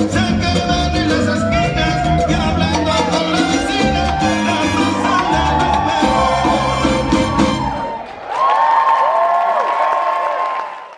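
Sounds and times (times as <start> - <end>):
salsa music: 0.0 - 8.0
audience cheering and applauding: 0.3 - 10.9.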